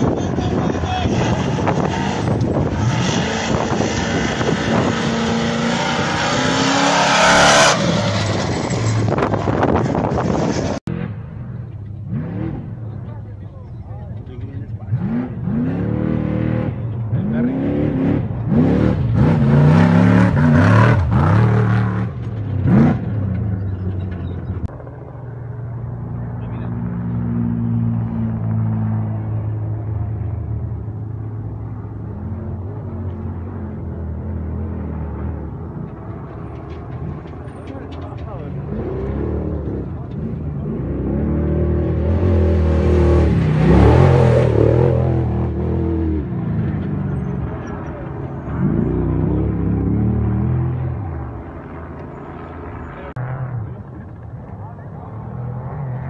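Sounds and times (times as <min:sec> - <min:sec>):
truck engine revving: 0:00.0 - 0:11.3, 0:12.0 - 0:13.0, 0:14.7 - 0:24.7, 0:26.5 - 0:52.0.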